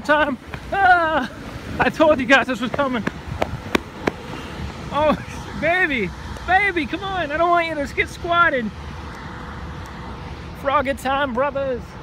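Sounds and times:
running footsteps on road: 0.0s - 10.6s
low traffic rumble: 0.0s - 12.0s.

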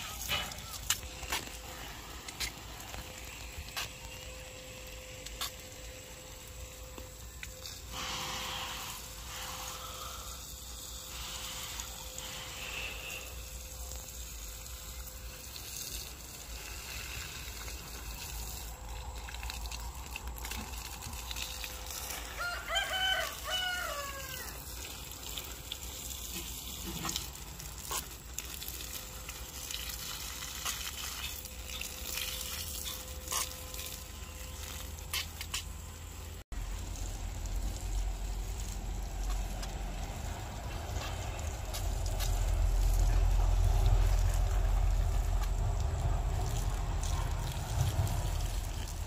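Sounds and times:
water spraying from hose: 0.0s - 49.0s
rooster crowing: 22.0s - 24.7s.

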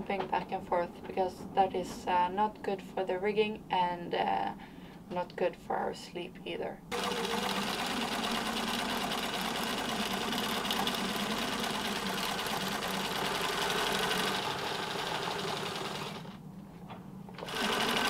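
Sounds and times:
sewing machine stitching: 6.9s - 16.4s, 17.4s - 18.0s.

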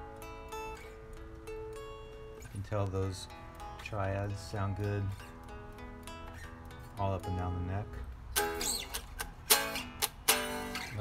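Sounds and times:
electric guitar chords ringing: 0.0s - 11.0s.

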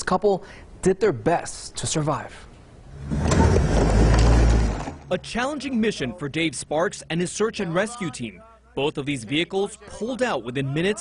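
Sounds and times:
vehicle rumble: 2.8s - 7.3s
tyres crunching on rocky dirt: 3.1s - 5.1s.

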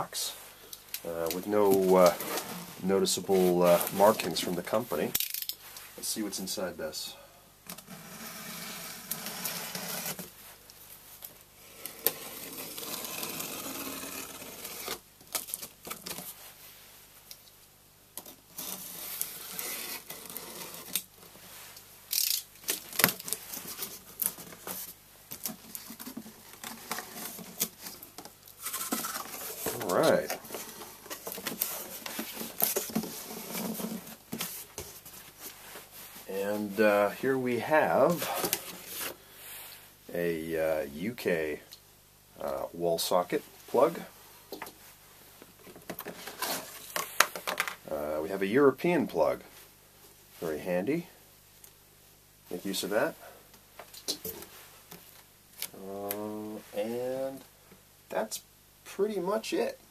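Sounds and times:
cardboard scraping and rustling: 1.3s - 4.6s, 18.2s - 21.7s, 22.7s - 36.8s, 45.8s - 47.7s.

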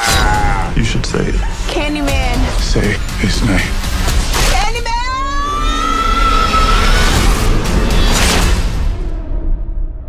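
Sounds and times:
woman screaming: 4.9s - 7.2s.

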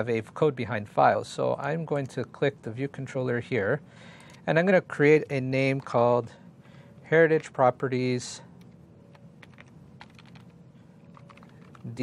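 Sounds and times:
keyboard typing: 8.6s - 12.0s.

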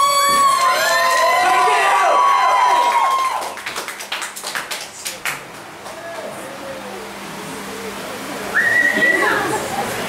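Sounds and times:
audience hand claps: 2.8s - 6.3s.

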